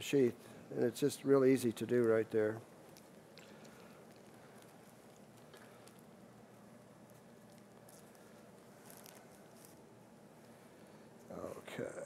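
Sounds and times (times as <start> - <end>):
soft clicks and rustles: 1.6 - 11.4.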